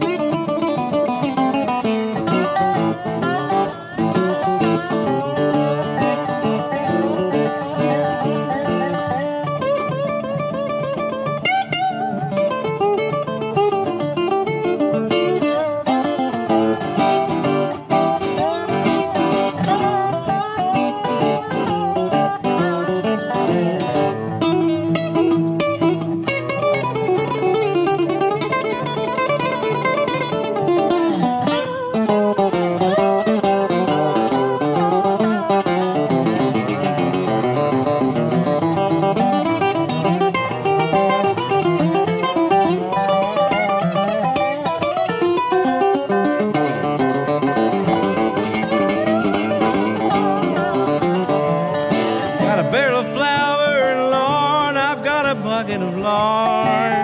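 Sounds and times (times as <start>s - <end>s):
flatpicked resonator guitar: 0.0s - 57.0s
slide guitar with steel bar: 0.0s - 57.0s.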